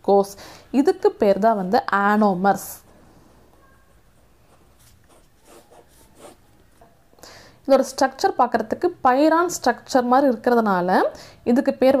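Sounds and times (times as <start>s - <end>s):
ballpoint pen scratching on paper: 4.2s - 6.5s.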